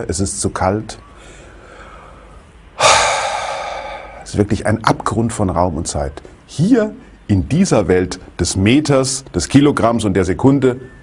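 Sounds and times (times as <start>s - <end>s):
man gasping breath: 1.2s - 4.3s.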